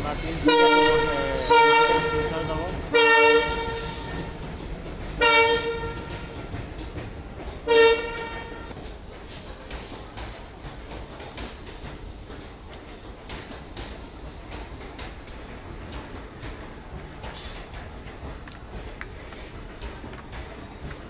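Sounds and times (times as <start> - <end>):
train coaches rumbling: 0.0 - 21.0
train horn blasts: 0.4 - 4.3, 5.2 - 6.4, 7.6 - 8.7.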